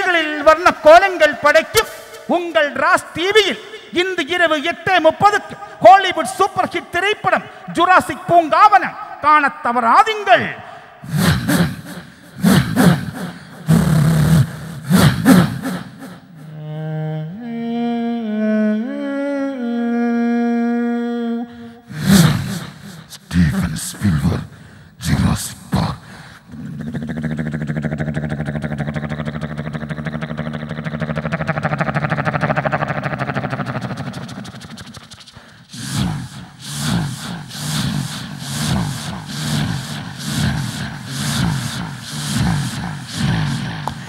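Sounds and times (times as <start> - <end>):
short vocal bursts: 10.3 - 44.0
person imitating growling effects: 11.0 - 24.5, 25.2 - 44.0.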